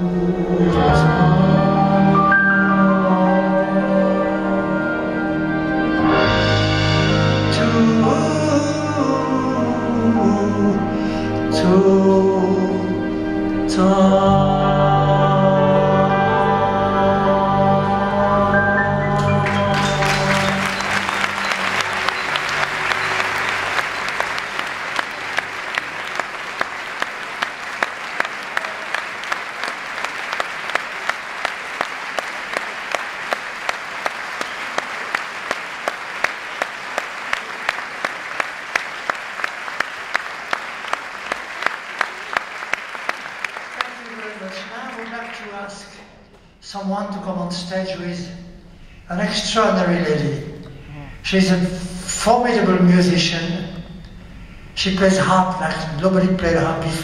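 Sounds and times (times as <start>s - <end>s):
orchestral piece with piano: 0.0s - 28.3s
audience applauding: 19.2s - 46.0s.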